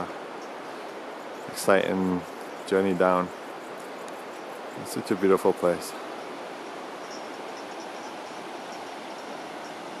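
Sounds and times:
rushing mountainside wind noise: 0.0s - 10.0s.

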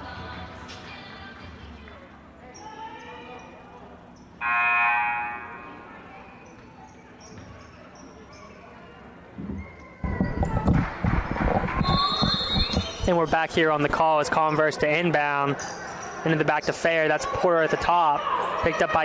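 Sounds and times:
scoreboard horn buzz: 4.4s - 5.8s.

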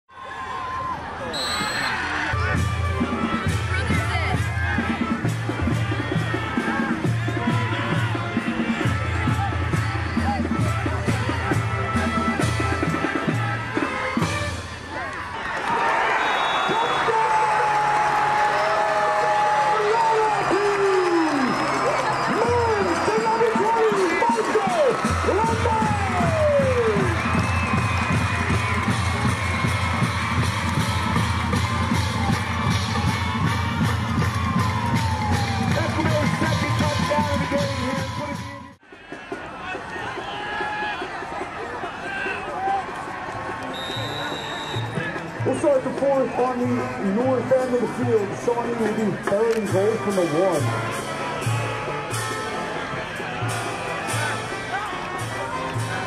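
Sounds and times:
crowd cheering and yelling: 0.1s - 56.0s.

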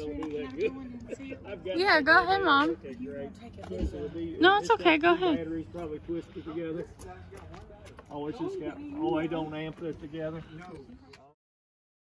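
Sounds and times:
people talking quietly: 0.0s - 11.4s.

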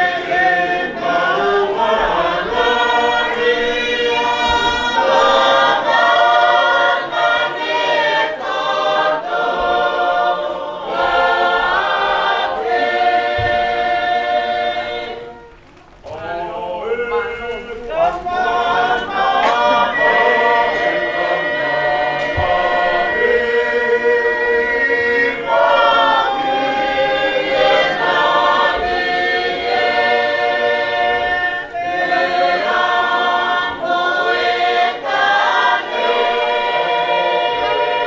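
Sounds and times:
congregation singing a hymn: 0.0s - 38.0s.

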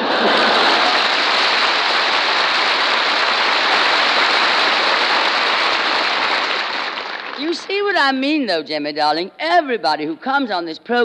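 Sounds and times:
audience laughing: 0.0s - 2.2s
audience applauding: 0.0s - 7.9s.

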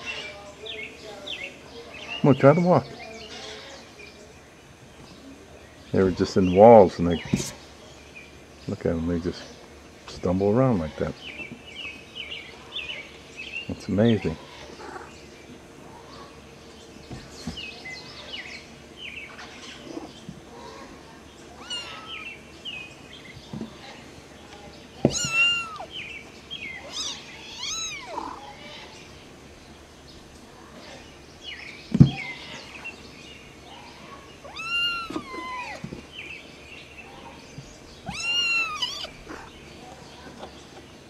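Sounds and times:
kitten meowing: 25.1s - 25.9s, 26.9s - 28.4s, 34.5s - 35.8s, 38.1s - 39.2s.

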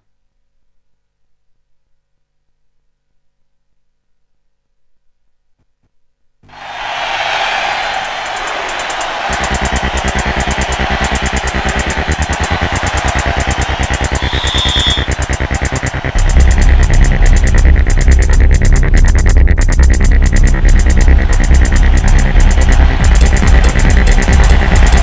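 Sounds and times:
electronic music: 6.6s - 25.0s
pulsing beat: 6.9s - 25.0s
heavy bass: 7.8s - 25.0s.

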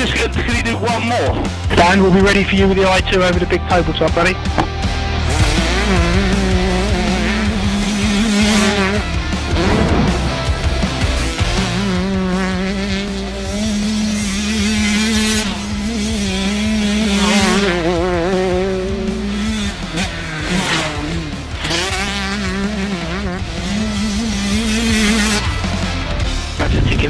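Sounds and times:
motocross engine revving high: 0.0s - 26.7s
music: 0.0s - 27.0s.

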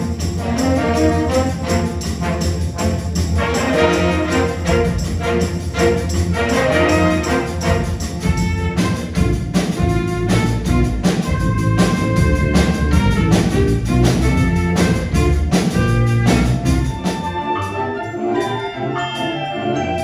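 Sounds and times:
drum kit beat: 0.0s - 18.0s
saxophones and trumpets: 0.0s - 20.0s.

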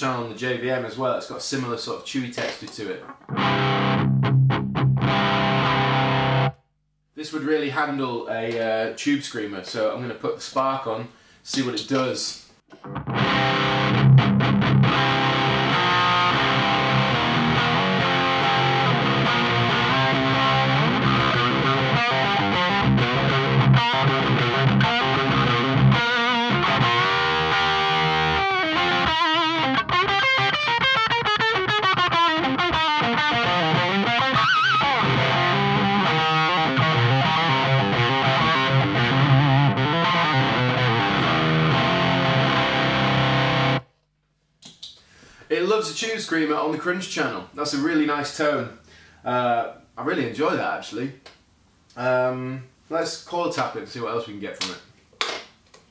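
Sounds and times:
overdriven electric guitar: 3.1s - 6.6s, 12.7s - 43.9s.

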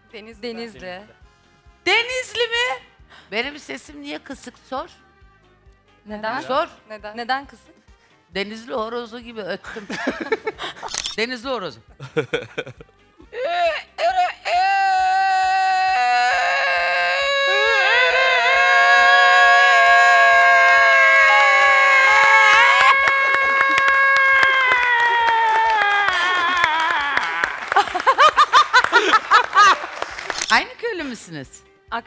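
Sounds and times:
people clapping and cheering: 17.3s - 30.7s.

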